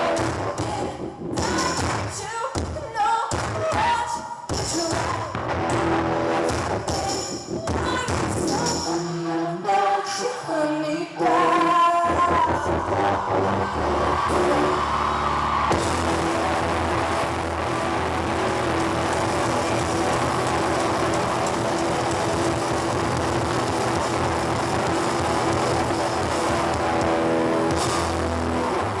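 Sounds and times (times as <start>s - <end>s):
distorted guitar and bass drone: 0.0s - 2.1s, 5.2s - 9.1s, 11.2s - 29.0s.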